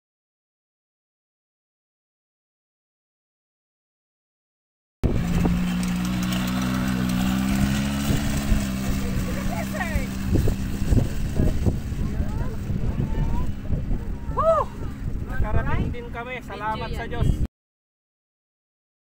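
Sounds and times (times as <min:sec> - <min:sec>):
gusty low rumbling: 0:05.0 - 0:17.5
quad bike engine: 0:05.0 - 0:17.5.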